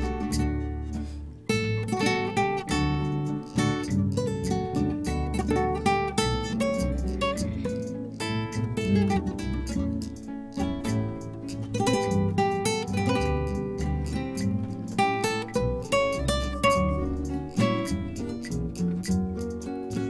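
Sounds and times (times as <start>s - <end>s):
acoustic guitars playing: 0.0s - 20.0s.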